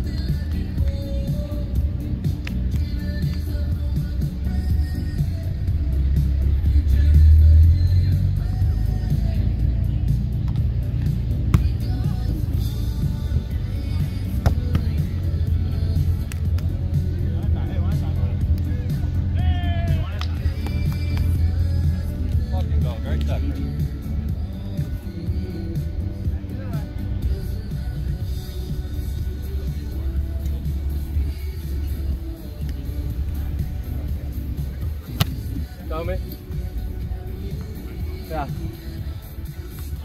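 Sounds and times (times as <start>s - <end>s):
background music: 0.0s - 40.0s
steady low rumble: 0.0s - 40.0s
voices: 0.0s - 40.0s
volleyball being hit: 14.4s - 15.0s, 35.0s - 35.6s.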